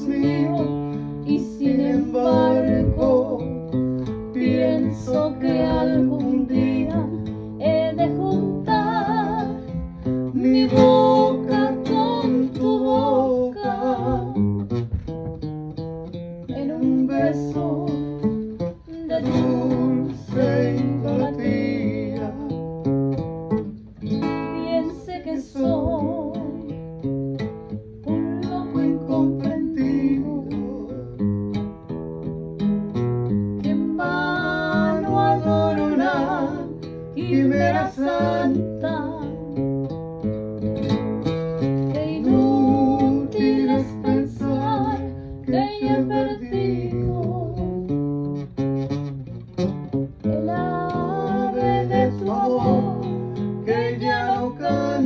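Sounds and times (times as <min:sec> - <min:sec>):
person singing with vibrato: 0:00.0 - 0:03.5, 0:04.4 - 0:14.5, 0:16.5 - 0:18.1, 0:18.8 - 0:22.6, 0:24.4 - 0:26.7, 0:28.0 - 0:31.2, 0:33.7 - 0:39.3, 0:41.9 - 0:47.7, 0:50.2 - 0:55.0
strummed acoustic guitar: 0:00.0 - 0:55.0.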